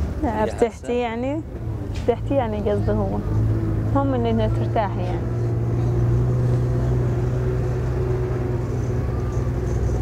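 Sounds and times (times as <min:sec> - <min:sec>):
engine running: 0:00.0 - 0:10.0.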